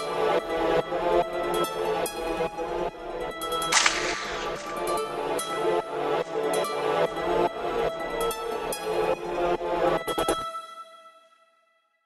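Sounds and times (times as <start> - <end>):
sharp crack effect: 3.7 - 5.5.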